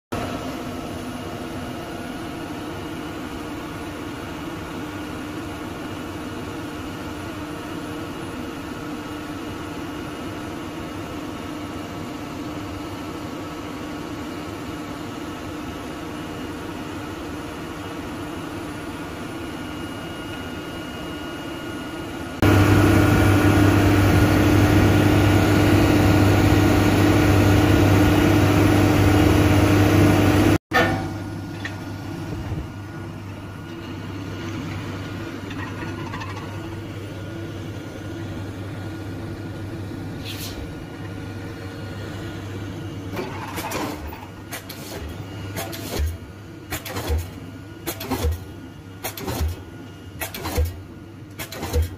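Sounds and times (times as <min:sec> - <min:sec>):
piling rig machine hum: 0:00.2 - 0:51.9.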